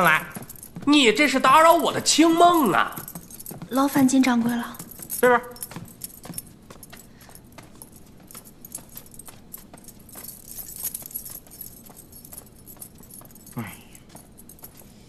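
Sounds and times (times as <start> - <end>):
metal keys jangling: 0.0 - 15.0.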